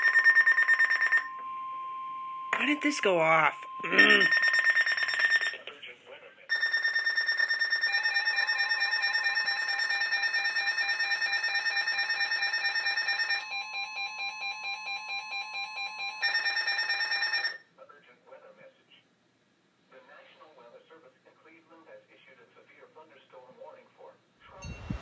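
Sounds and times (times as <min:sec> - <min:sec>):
pulsing electronic alarm beeping: 0:00.0 - 0:05.6, 0:06.5 - 0:17.6.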